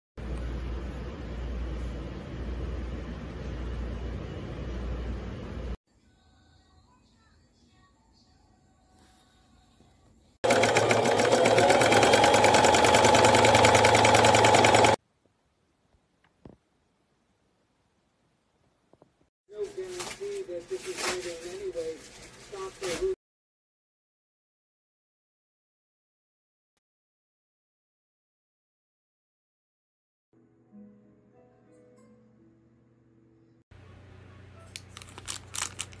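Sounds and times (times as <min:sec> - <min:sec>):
sewing machine stitching clatter: 0:10.4 - 0:15.0
plastic bag crinkling: 0:19.6 - 0:23.2, 0:34.7 - 0:36.0.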